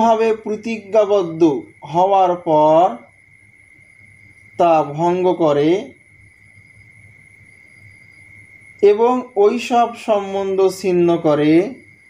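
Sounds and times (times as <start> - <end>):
faint high-pitched tone: 0.0 - 12.0
low background noise: 0.0 - 12.0.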